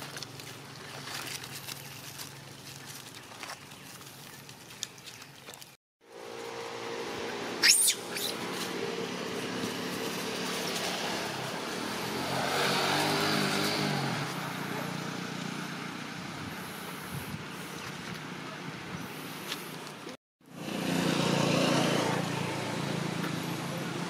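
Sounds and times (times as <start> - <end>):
vehicle engine running: 6.0 - 19.7, 20.4 - 24.0
high-pitched squeal: 6.4 - 8.7.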